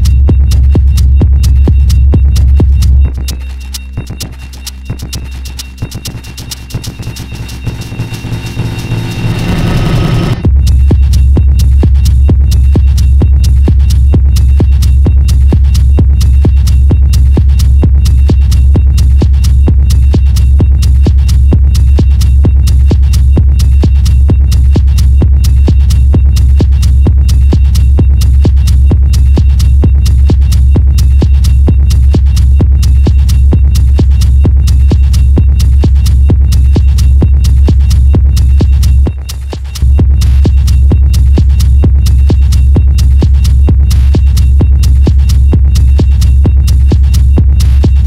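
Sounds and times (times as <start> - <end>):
bright percussion: 0.0 - 48.0
heavy bass hum: 0.0 - 48.0
kick drum beat: 0.0 - 48.0.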